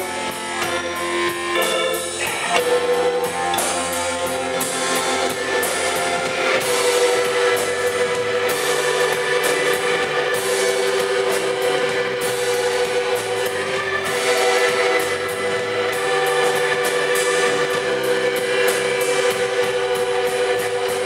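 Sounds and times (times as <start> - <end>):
live rock band playing: 0.0 - 21.0.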